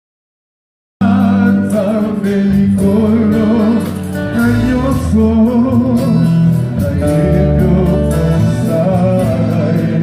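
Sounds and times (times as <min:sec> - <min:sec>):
acoustic and electric guitars: 0:01.0 - 0:10.0
backing singers: 0:01.0 - 0:10.0
drums: 0:01.0 - 0:10.0
man singing lead: 0:01.0 - 0:10.0.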